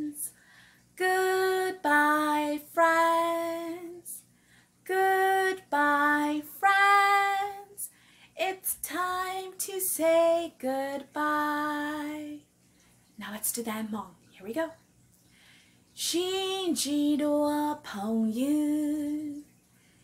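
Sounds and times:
woman singing unaccompanied: 0.0 - 0.4, 1.0 - 12.5, 16.0 - 19.5.

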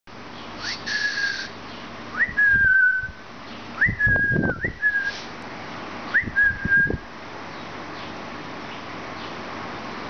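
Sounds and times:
parrot whistling: 0.6 - 1.5.

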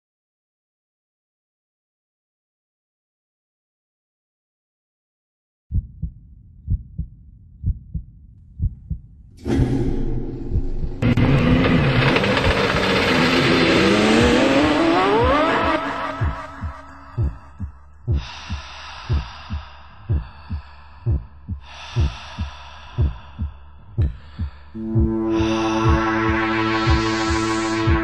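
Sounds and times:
heartbeat thumps: 5.7 - 12.2, 14.0 - 28.0
high-revving car engine roar: 10.9 - 17.0.

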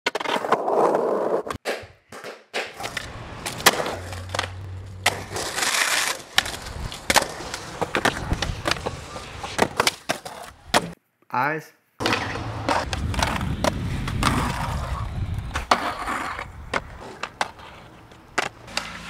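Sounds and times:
skateboard wheels rolling on concrete: 0.1 - 11.0, 12.0 - 19.0.

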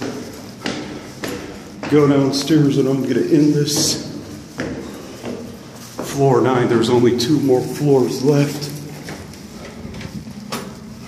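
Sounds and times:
quiet footsteps in a stairwell: 0.0 - 11.0.

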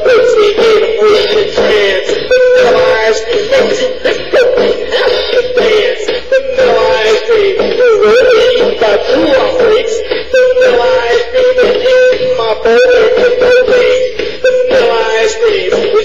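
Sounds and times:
steady beat: 0.0 - 16.0.

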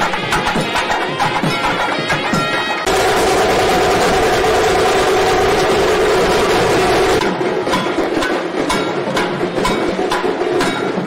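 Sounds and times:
large drums fast beat: 2.9 - 11.0.

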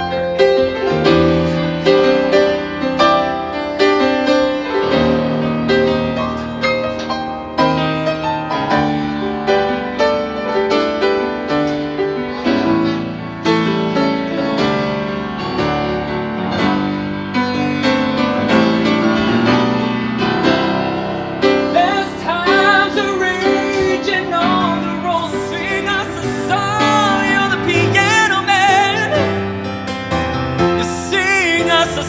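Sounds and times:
grand piano playing: 0.0 - 32.0
person singing with vibrato: 21.6 - 29.5, 30.7 - 32.0.

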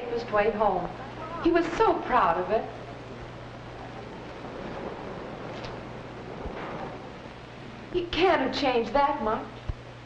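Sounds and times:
faint low hum: 0.0 - 10.0
steady hiss: 0.0 - 10.0.

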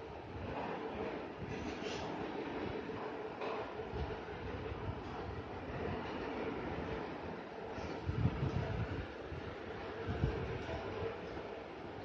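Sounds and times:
steady rumbling background noise: 0.0 - 12.0.

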